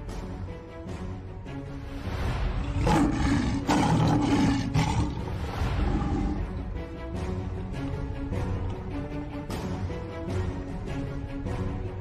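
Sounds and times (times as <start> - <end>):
lion roaring: 2.6 - 6.6.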